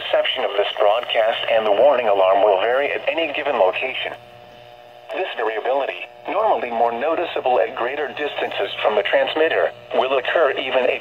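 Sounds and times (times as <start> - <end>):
faint receiver buzz: 0.0 - 11.0
radio voice through small speaker: 0.1 - 4.2, 5.1 - 11.0.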